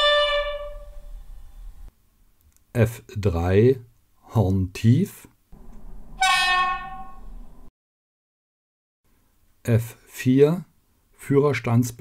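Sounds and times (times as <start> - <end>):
model train horn: 0.0 - 1.1, 6.2 - 7.2
low steady rumble: 5.5 - 7.7.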